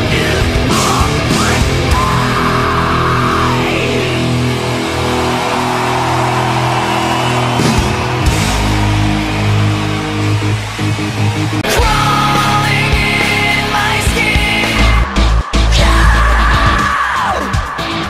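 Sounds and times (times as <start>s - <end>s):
bass guitar chords: 0.0s - 18.0s
distorted electric guitars: 0.0s - 18.0s.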